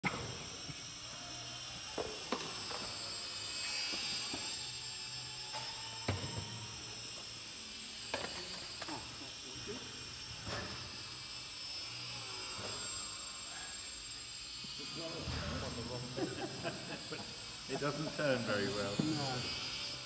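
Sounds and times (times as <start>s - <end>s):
electric motor and propeller whine: 0.0s - 20.0s.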